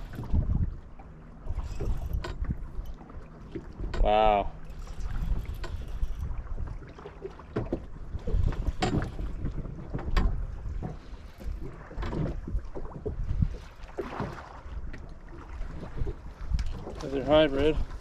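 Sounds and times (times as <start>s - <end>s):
waves lapping against boat hull: 0.0s - 18.0s
wind rumbling on microphone: 0.0s - 18.0s.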